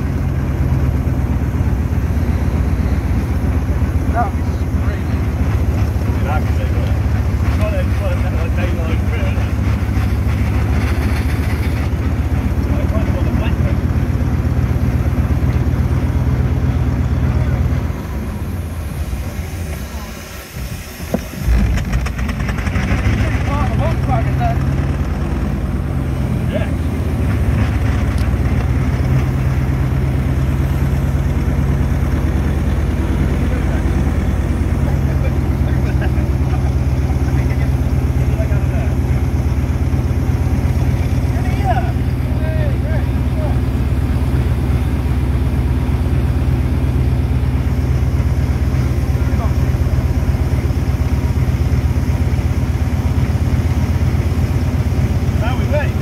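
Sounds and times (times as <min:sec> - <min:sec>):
steam wagon rumbling: 0:00.0 - 0:56.0.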